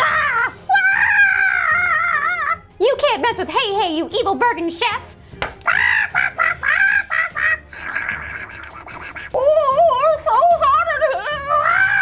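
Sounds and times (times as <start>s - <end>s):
chicken-like squawking: 5.6s - 9.4s.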